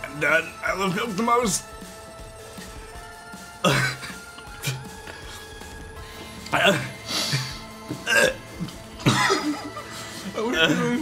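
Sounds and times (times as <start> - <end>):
man laughing breathily: 6.8 - 7.7, 8.5 - 11.0.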